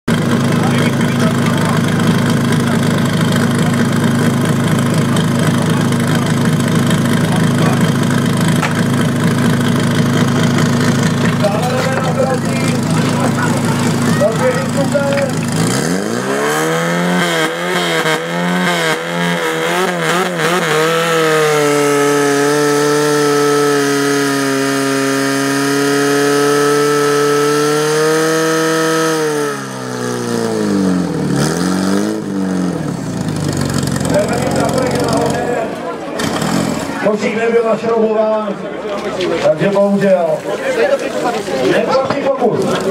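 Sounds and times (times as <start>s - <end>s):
pump engine revving: 0.1s - 37.2s.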